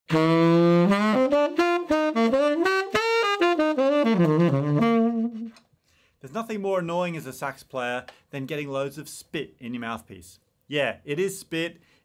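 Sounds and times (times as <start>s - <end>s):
tenor saxophone melody: 0.1s - 5.7s.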